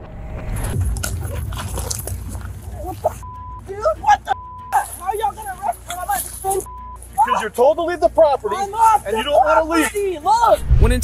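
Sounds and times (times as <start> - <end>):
camera rumbling and rustling: 0.0 - 3.3.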